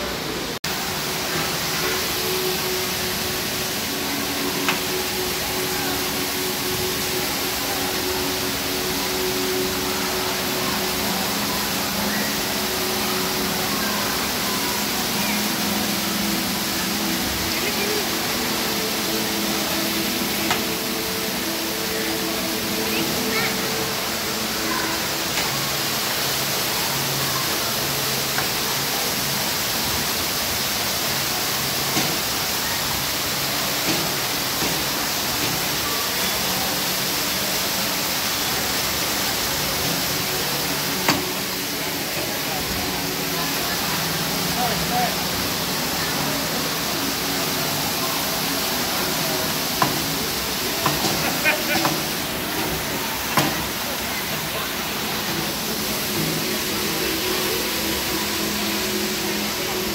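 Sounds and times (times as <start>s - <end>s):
fountain water splashing: 0.0s - 59.9s
indistinct crowd voices: 0.0s - 59.9s.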